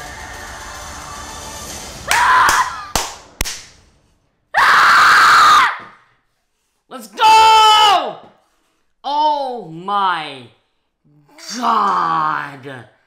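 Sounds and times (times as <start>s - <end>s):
soundtrack music: 0.0s - 2.4s
person screaming: 4.6s - 5.8s, 11.4s - 12.4s.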